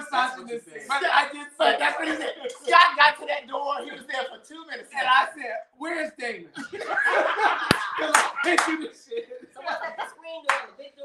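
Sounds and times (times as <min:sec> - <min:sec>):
people laughing: 0:06.6 - 0:10.6
hand claps: 0:07.7 - 0:08.8, 0:10.4 - 0:10.7.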